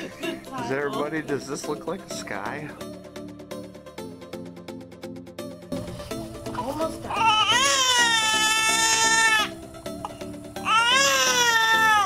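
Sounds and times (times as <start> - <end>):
soft music: 0.0 - 12.0
baby crying: 7.1 - 12.0.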